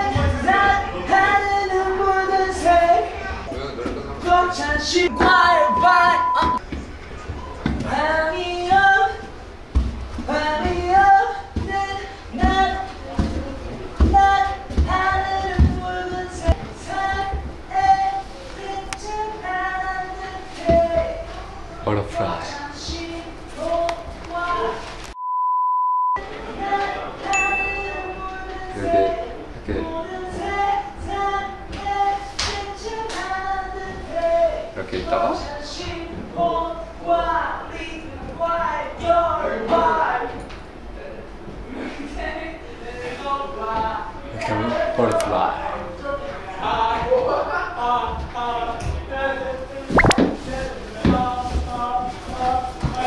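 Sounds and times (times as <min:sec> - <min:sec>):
electronic beep tone: 0:05.1 - 0:06.6, 0:25.2 - 0:26.2, 0:50.0 - 0:50.2.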